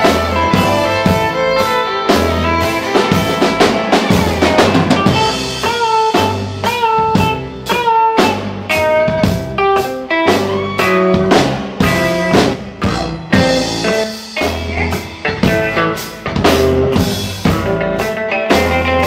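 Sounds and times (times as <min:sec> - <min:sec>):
double bass: 0:00.0 - 0:07.7, 0:10.4 - 0:19.0
drum kit steady beat: 0:00.0 - 0:19.0.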